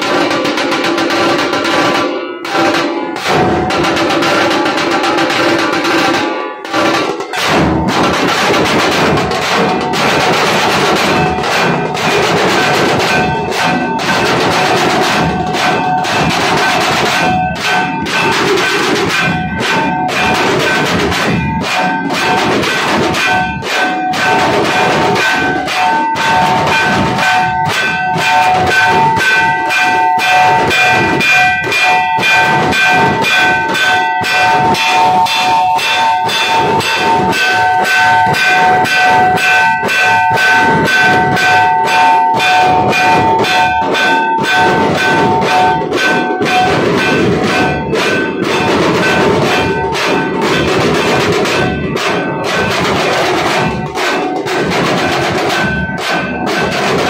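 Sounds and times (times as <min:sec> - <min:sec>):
dhol drums playing fast rhythm: 0:00.0 - 0:57.0
steady metallic ringing: 0:00.0 - 0:57.0.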